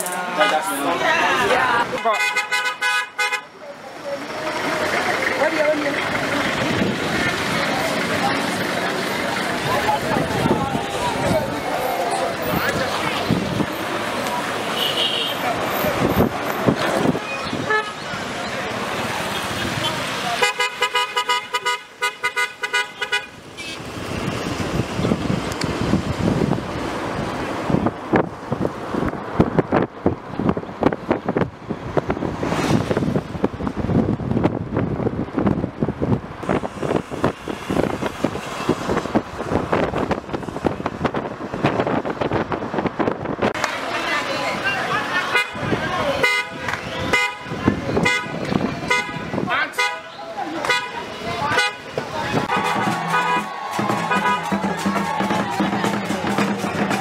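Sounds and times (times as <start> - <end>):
cars driving: 0.0 - 57.0.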